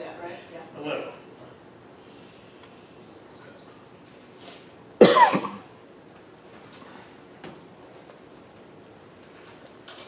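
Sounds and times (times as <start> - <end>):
loud cough: 5.0 - 5.7.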